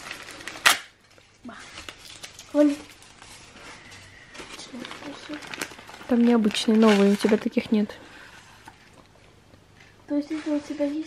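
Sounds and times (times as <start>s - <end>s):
plastic wrapping rustling: 0.0s - 11.0s.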